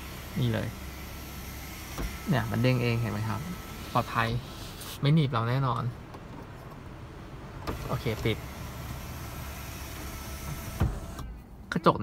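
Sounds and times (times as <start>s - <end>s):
sunroof motor running: 0.0s - 4.7s, 7.6s - 11.2s
sunroof thump: 10.0s - 11.4s.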